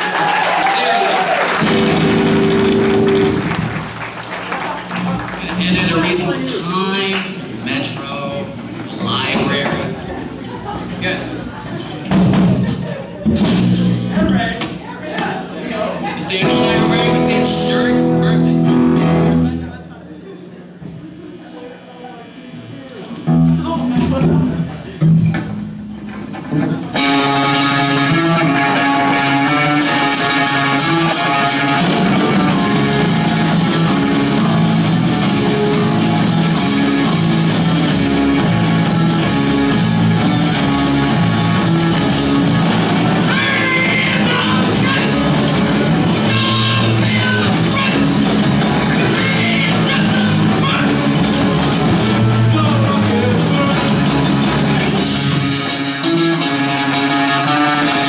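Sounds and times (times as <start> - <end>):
drum kit: 0.0 - 4.2, 12.1 - 14.8, 23.3 - 58.0
electric guitar chord: 1.6 - 3.8, 26.9 - 58.0.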